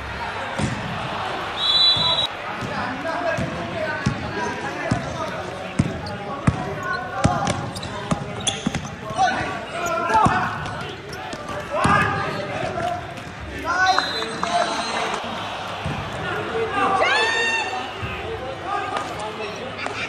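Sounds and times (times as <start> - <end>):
players' voices: 0.0 - 20.0
basketball bouncing on court: 1.9 - 9.5, 10.1 - 12.3.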